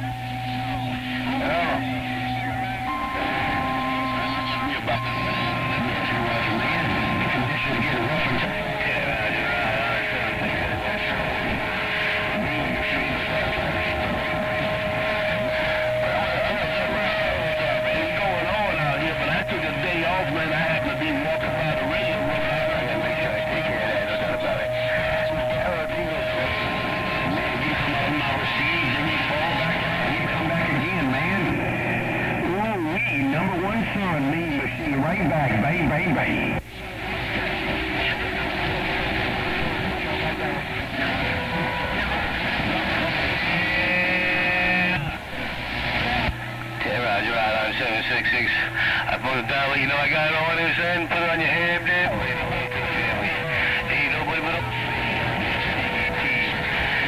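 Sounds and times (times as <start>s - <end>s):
whistling tones: 0.0s - 10.2s
garbled radio voices: 0.0s - 57.0s
radio static: 0.0s - 57.0s.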